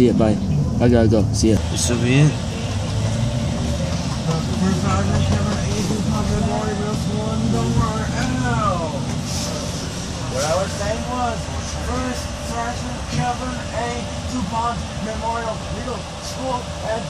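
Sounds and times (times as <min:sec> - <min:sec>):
indistinct voices talking: 0:00.0 - 0:17.0
vehicle rumbling: 0:00.0 - 0:17.0.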